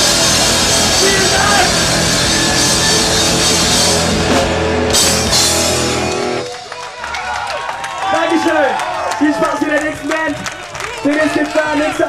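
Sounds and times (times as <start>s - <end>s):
rock band playing live: 0.0s - 6.8s
crowd cheering and shouting: 0.0s - 12.0s.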